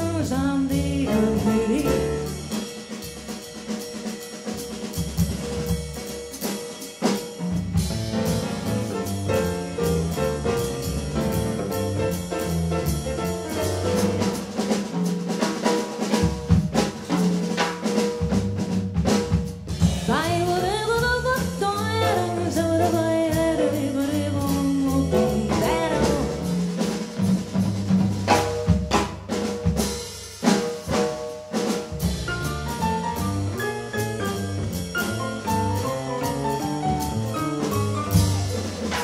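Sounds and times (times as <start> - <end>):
walking upright bass: 0.0 - 2.5, 7.6 - 14.8, 19.1 - 29.0, 32.0 - 39.0
drum kit snare and rimshots: 0.0 - 39.0
jazz melody line: 0.0 - 39.0
piano: 0.0 - 39.0.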